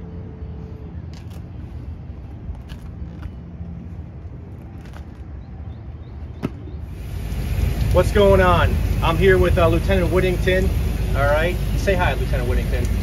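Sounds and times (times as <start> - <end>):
fire engine idling: 6.9 - 13.0.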